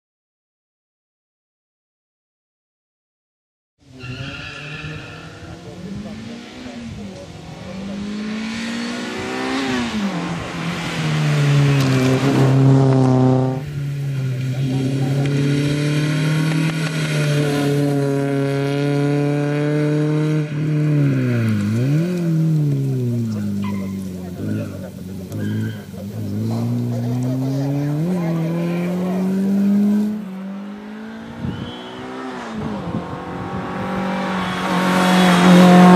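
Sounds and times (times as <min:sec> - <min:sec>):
rally car engine revving: 0:03.8 - 0:35.9.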